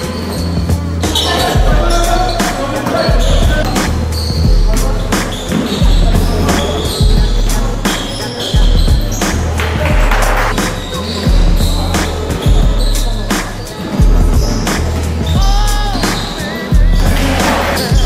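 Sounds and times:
music with heavy bass beat: 0:00.4 - 0:18.0.

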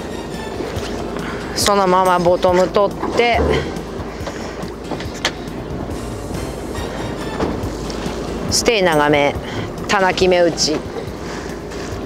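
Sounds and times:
water noise: 0:00.0 - 0:05.9
background music: 0:00.0 - 0:12.0
boat engine rumble: 0:00.0 - 0:12.0
wind: 0:00.0 - 0:12.0.

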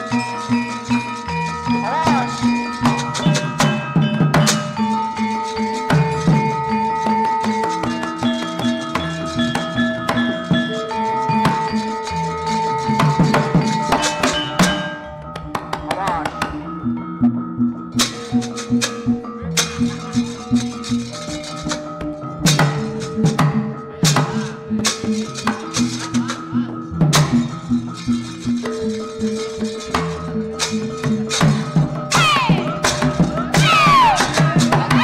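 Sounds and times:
held musical tones over beat: 0:00.0 - 0:35.0.

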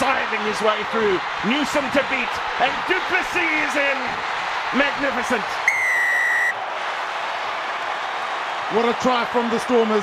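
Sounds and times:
stadium crowd cheering: 0:00.0 - 0:10.0
referee's whistle blast: 0:05.7 - 0:06.6.

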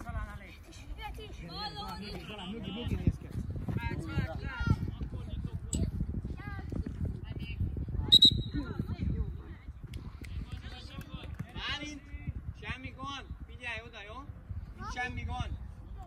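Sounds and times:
wind rumble on microphone: 0:00.0 - 0:16.0
referee's whistle blast: 0:08.1 - 0:08.6.

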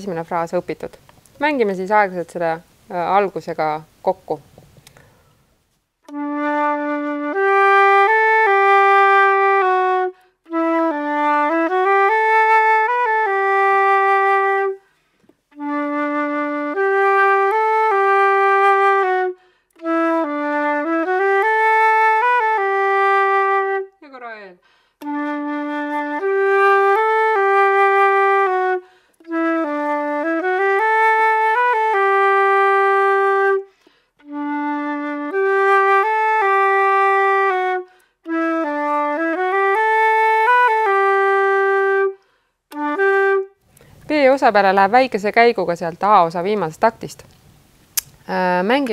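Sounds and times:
flute playing waltz melody: 0:06.1 - 0:14.9, 0:15.5 - 0:24.1, 0:25.0 - 0:43.7.

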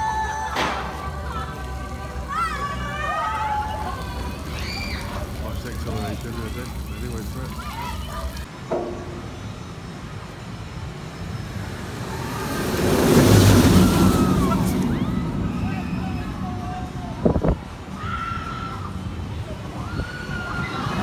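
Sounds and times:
roller coaster train rushing rumble: 0:08.5 - 0:21.0
sharp knock: 0:08.6 - 0:09.9.

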